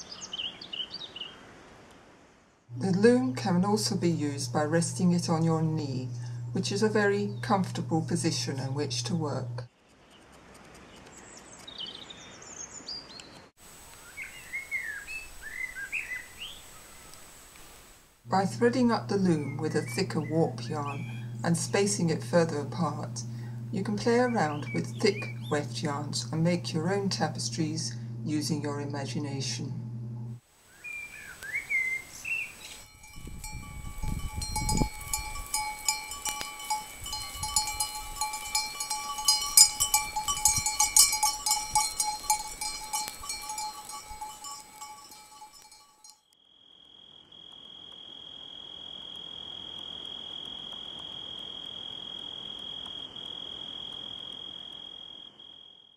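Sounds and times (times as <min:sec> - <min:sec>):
background hiss: 0:13.6 - 0:46.1
lower-pitched chirps: 0:18.5 - 0:28.4, 0:29.9 - 0:46.1
wavering high-pitched call: 0:18.9 - 0:21.9
birds chirping and singing: 0:19.1 - 0:22.2, 0:23.8 - 0:26.7, 0:30.8 - 0:35.7
bells ringing: 0:32.8 - 0:46.2.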